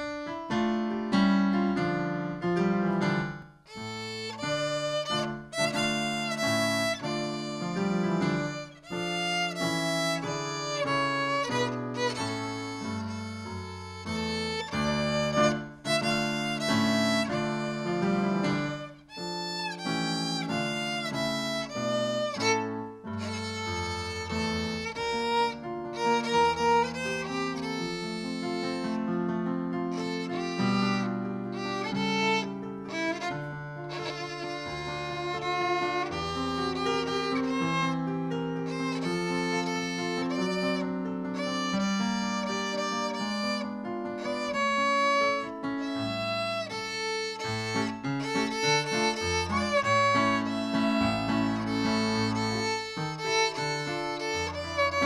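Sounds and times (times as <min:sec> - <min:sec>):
violin melody: 0:00.0 - 0:55.0.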